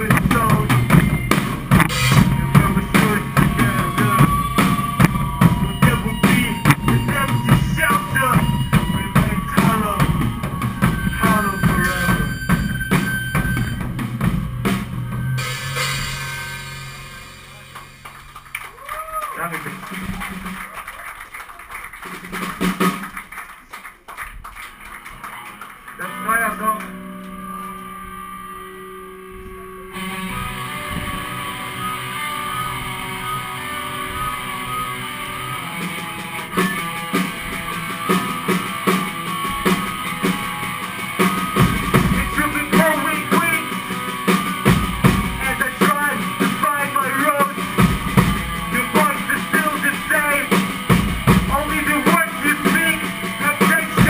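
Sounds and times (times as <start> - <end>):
held guitar notes: 0.0 - 18.5, 25.0 - 54.0
hardcore band playing: 0.0 - 18.8, 22.0 - 23.4, 24.7 - 54.0
drums: 0.0 - 24.0, 29.9 - 54.0
stage noise: 0.0 - 54.0.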